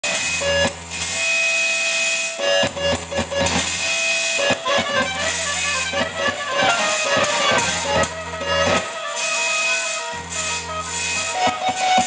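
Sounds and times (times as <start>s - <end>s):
held electronic tones: 2.4s - 12.0s
low drone: 2.6s - 12.0s.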